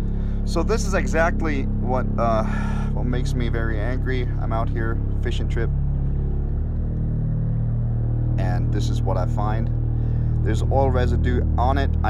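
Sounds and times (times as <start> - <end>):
loud low drone: 0.0 - 12.0.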